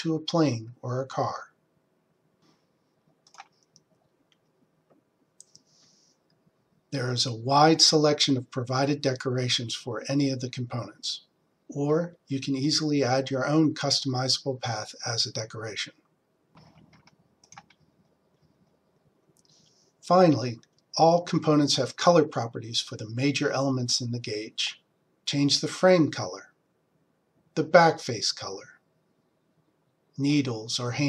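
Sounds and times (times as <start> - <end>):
soft keyboard typing: 3.1 - 5.7, 16.6 - 18.7
computer mouse clicks: 3.2 - 5.7, 16.6 - 18.7.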